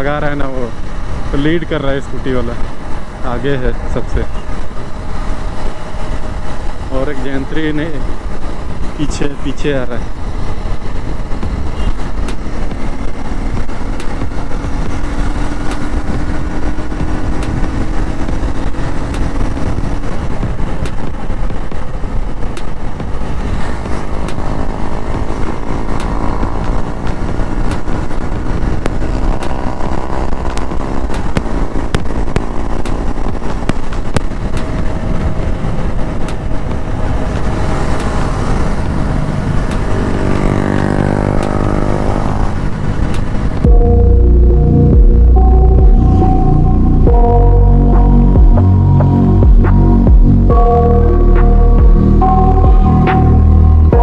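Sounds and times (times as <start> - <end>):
wind rushing over microphone: 0.0 - 54.0
motorcycle engine running: 10.3 - 54.0.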